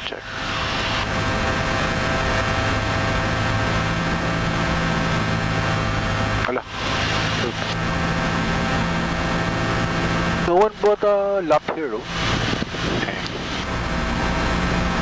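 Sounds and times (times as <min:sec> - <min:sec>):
propeller plane engine droning: 0:00.0 - 0:15.0
air rushing over cabin: 0:11.7 - 0:14.3.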